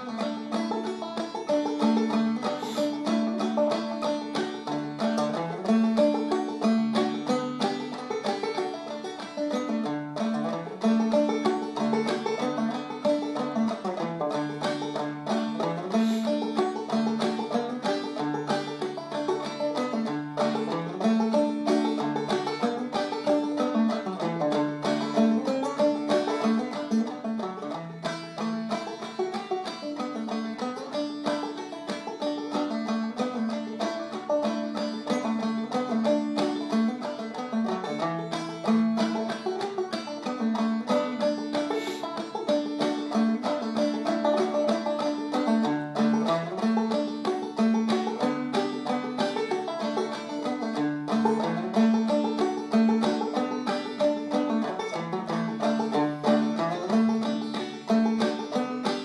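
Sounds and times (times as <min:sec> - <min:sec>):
banjo playing old-time tune: 0:00.0 - 0:59.0.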